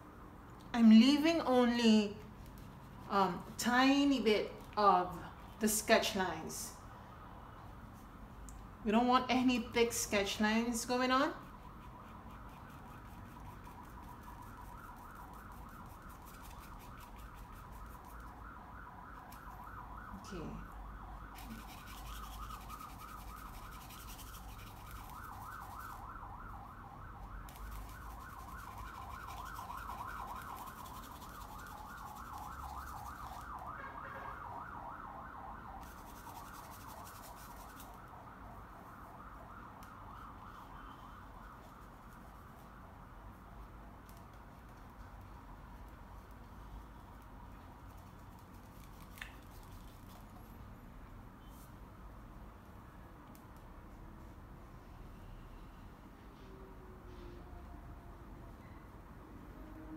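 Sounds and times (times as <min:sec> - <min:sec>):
paintbrush rubbing: 0:10.8 - 0:18.3, 0:21.4 - 0:26.0, 0:27.5 - 0:33.4, 0:35.8 - 0:38.0, 0:47.8 - 0:50.5.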